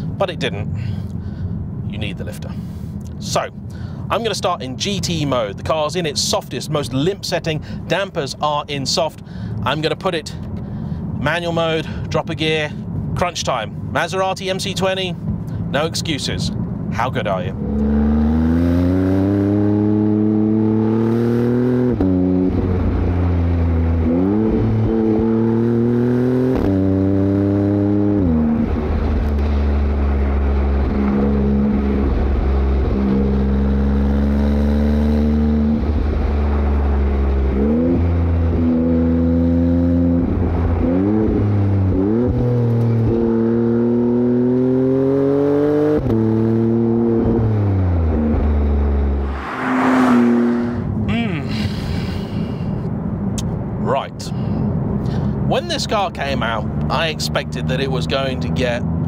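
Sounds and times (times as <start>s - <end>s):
car engine accelerating hard: 17.5s - 51.4s.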